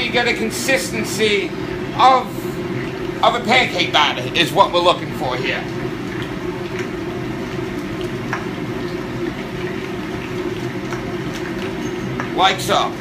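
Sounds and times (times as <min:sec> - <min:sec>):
exhaust hood fan rushing: 0:00.0 - 0:13.0
faint clicks of mixing: 0:00.9 - 0:12.8.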